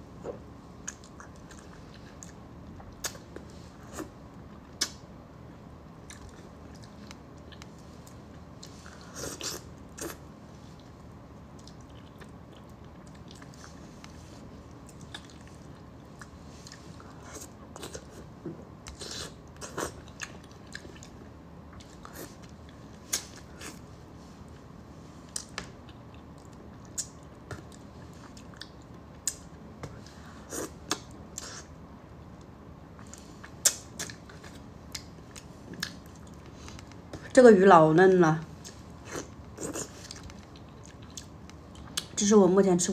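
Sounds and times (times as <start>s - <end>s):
wet chewing and lip smacks: 4.6s - 5.0s, 9.4s - 23.8s, 25.3s - 29.6s, 33.0s - 37.0s, 38.6s - 42.2s
soft mouth clicks: 4.8s - 5.0s.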